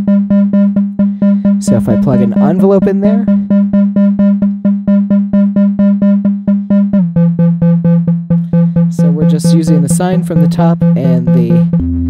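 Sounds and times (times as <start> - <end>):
plucked synth notes: 0.0 - 12.0.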